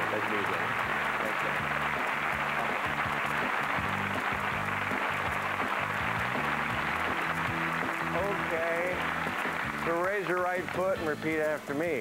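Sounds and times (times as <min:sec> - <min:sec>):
audience applauding: 0:00.0 - 0:12.0
show music: 0:00.0 - 0:12.0.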